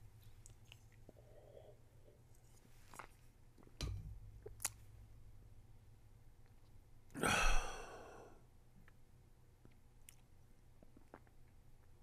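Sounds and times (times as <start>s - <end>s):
man sighing heavily: 7.2s - 8.4s.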